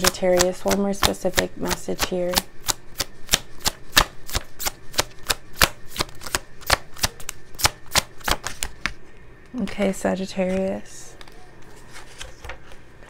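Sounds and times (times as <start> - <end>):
cards being shuffled: 0.0 - 9.0, 10.5 - 13.0.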